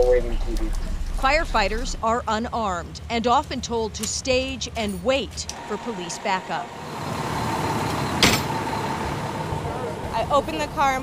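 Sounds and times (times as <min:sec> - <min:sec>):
fire engine idling: 0:00.0 - 0:11.0.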